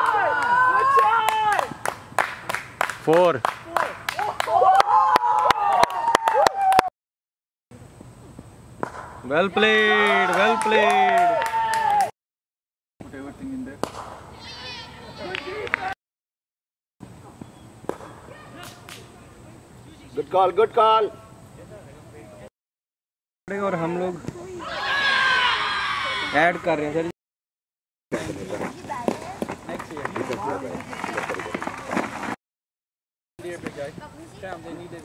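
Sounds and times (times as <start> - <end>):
cricket bat striking ball: 8.8 - 9.2
people talking and calling: 13.0 - 16.0, 17.0 - 22.5.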